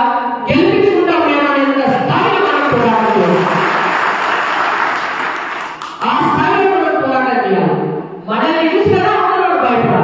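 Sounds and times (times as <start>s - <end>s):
audience applauding: 2.3s - 6.1s.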